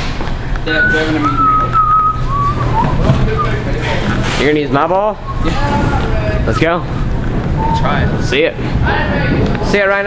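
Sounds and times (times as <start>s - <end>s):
steady low hum: 0.0s - 10.0s
person whistling: 0.7s - 3.7s, 5.2s - 6.1s, 7.6s - 8.3s.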